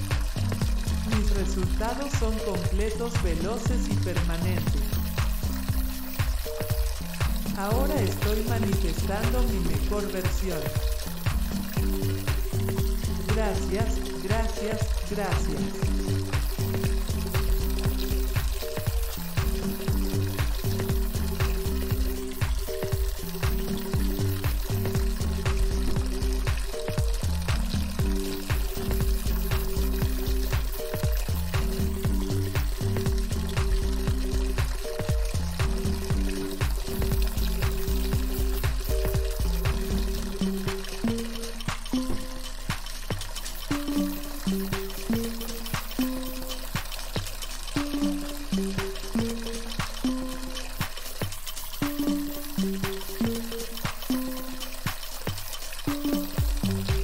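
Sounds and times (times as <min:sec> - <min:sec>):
running water: 0:00.0 - 0:57.0
soft ambient music: 0:00.0 - 0:57.0.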